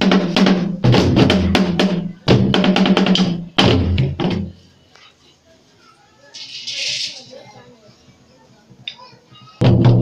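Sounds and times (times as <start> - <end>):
wooden drums beaten: 0.0 - 4.6, 9.6 - 10.0.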